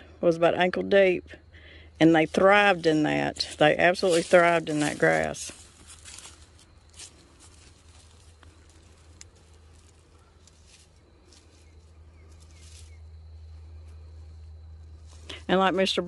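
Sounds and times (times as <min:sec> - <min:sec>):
steady low hum: 0:00.0 - 0:16.0
footsteps on leaf litter: 0:02.3 - 0:15.8.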